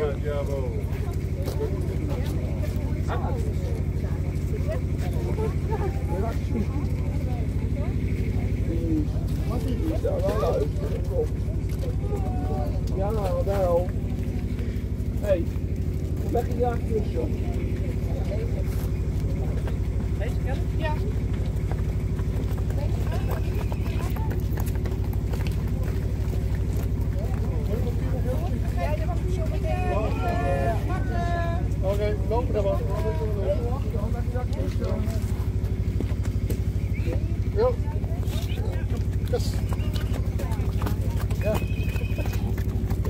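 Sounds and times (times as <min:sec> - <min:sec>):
crowd voices: 0:00.0 - 0:43.0
engine idling: 0:00.0 - 0:43.0
people talking: 0:00.0 - 0:43.0.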